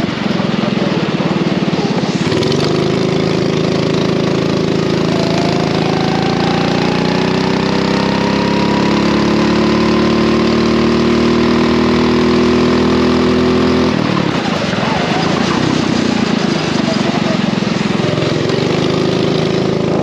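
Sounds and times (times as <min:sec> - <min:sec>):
kart engine at full throttle: 0:00.0 - 0:20.0.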